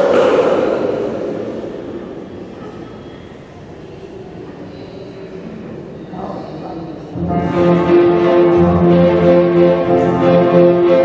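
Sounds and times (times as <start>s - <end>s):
low background murmur: 0.0s - 8.7s.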